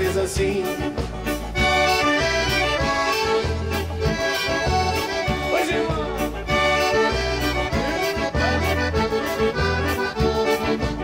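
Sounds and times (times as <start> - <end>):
bass and drums steady beat: 0.0 - 11.0
piano accordion melody: 0.0 - 11.0.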